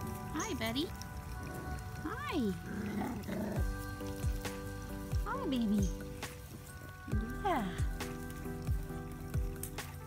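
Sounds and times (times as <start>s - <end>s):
background music sustained chords: 0.0s - 10.0s.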